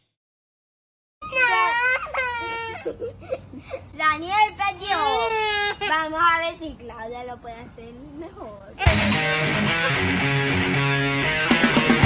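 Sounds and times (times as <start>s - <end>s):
young child crying: 1.2s - 4.0s, 4.8s - 6.1s, 8.8s - 9.2s.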